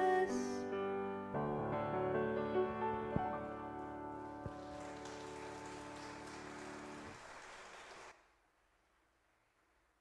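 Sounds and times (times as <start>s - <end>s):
light applause: 4.5s - 8.2s.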